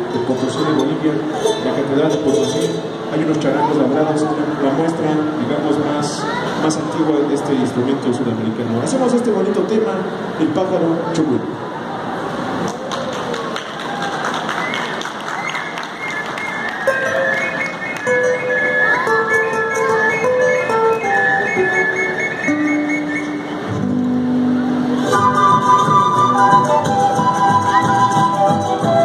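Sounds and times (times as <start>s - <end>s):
ocarina melody: 15.9s - 29.0s
folk band playing: 16.7s - 29.0s.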